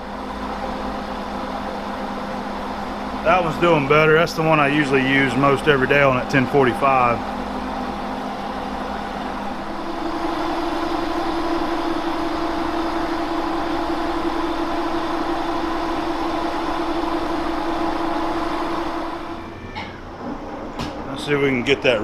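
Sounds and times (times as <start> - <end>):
lathe running: 0.0 - 19.5
steady cutting tone: 2.6 - 19.6.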